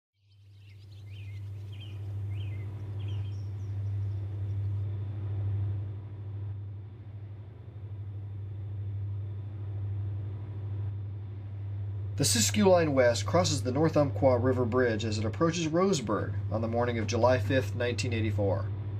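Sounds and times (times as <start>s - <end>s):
bird chirps: 0.2s - 4.8s
steady low rumble: 0.2s - 18.9s.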